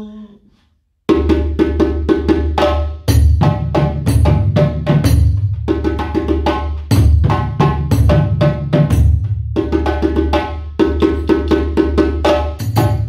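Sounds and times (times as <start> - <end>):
djembe hand drumming: 1.1 - 13.0.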